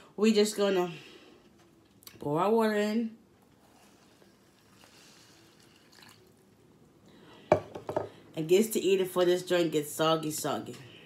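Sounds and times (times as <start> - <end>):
water pouring into cereal: 3.7 - 6.4.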